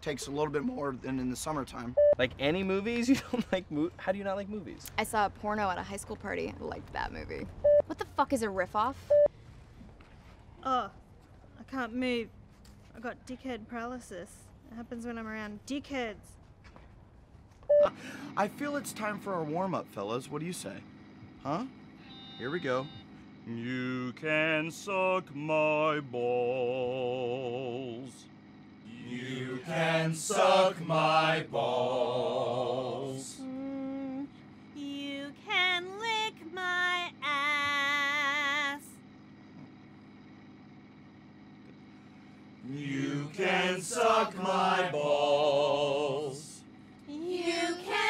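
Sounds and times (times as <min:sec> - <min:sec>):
faint low hum in bus: 0:00.0 - 0:48.0
short electronic beep: 0:07.6 - 0:07.8, 0:17.7 - 0:17.9, 0:22.0 - 0:23.2.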